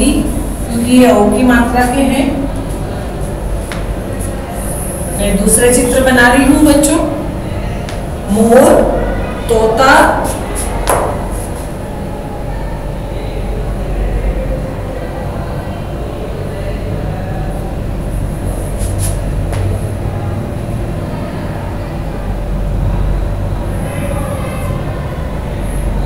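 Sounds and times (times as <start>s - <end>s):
low rumbling background noise: 0.0s - 26.0s.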